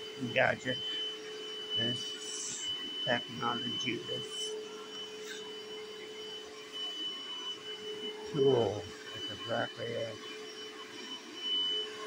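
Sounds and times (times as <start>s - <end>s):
carpet cleaner motor whining: 0.0s - 12.0s.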